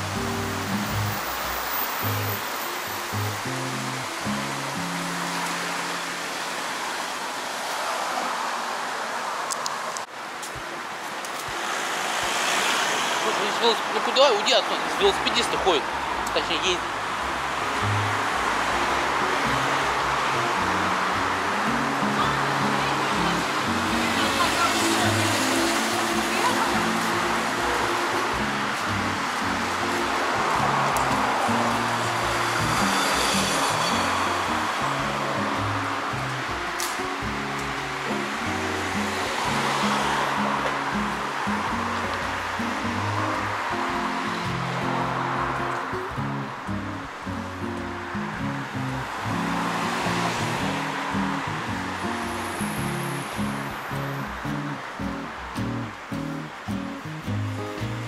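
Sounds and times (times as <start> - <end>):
street traffic rushing: 0.0 - 58.0.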